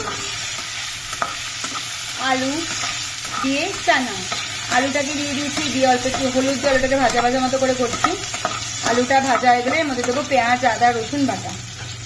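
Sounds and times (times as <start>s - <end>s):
potatoes sizzling in oil: 0.0s - 12.0s
metal spatula scraping pan: 5.5s - 10.2s.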